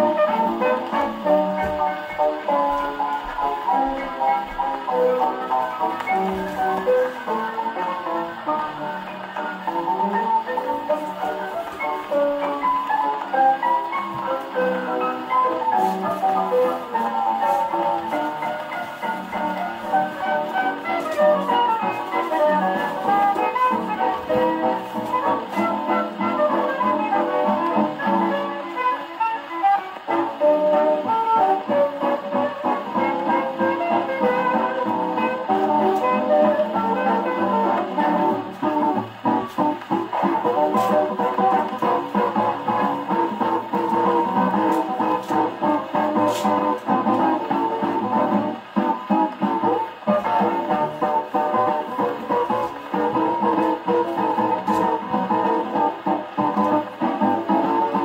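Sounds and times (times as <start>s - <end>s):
dance band on old record: 0.0s - 58.0s.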